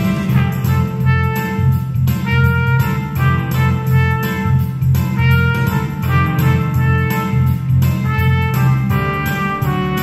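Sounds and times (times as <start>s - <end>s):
backing track with bass and beat: 0.0s - 10.0s
trumpet playing a melody: 0.0s - 10.0s.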